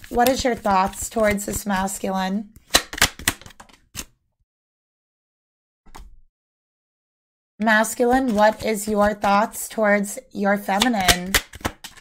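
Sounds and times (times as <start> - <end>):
cards snapping and tapping: 2.6 - 4.1, 10.7 - 12.0.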